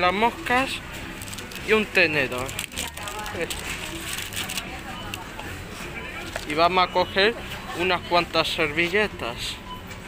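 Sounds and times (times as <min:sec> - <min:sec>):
faint voices: 0:00.0 - 0:09.6.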